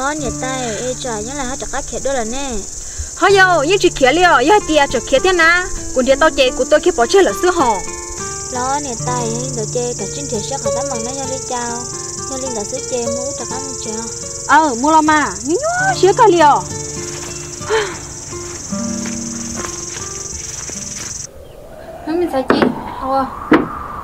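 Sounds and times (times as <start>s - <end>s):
women talking: 0.0s - 7.9s, 8.5s - 16.7s, 17.7s - 18.0s, 22.1s - 23.3s
soft background music: 0.0s - 21.3s
insects buzzing: 0.0s - 24.0s.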